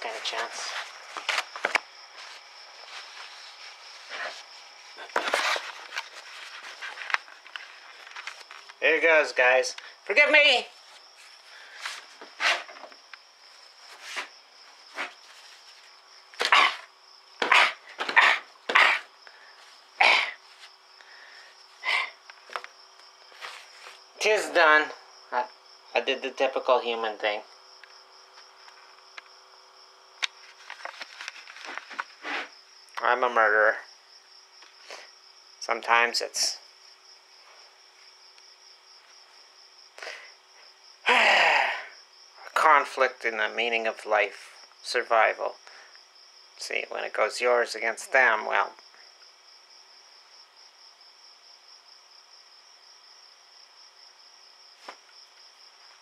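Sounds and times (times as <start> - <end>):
tissue paper crumpling: 2.2 - 4.5
breathy puff: 16.4 - 20.4, 21.0 - 22.2, 32.2 - 32.5, 41.1 - 41.9.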